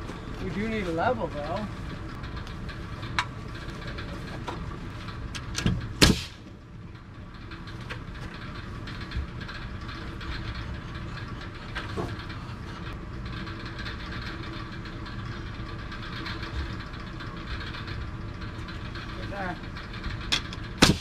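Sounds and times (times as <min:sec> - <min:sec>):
small engine running: 0:00.0 - 0:21.0
nail gun firing into wood: 0:06.0 - 0:06.4, 0:20.8 - 0:21.0.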